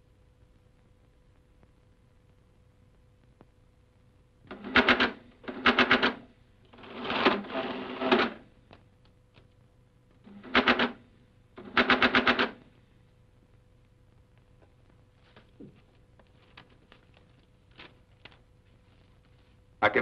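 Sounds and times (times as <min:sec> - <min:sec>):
mechanical adding machine clattering: 0:04.5 - 0:06.2, 0:06.8 - 0:08.4, 0:10.3 - 0:11.0, 0:11.6 - 0:12.6.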